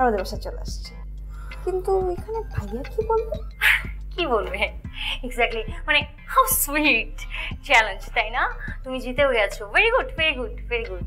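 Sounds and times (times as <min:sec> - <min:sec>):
quiet background music: 0:00.0 - 0:11.0
woman speaking expressively: 0:01.7 - 0:11.0
woman laughing: 0:03.0 - 0:03.9.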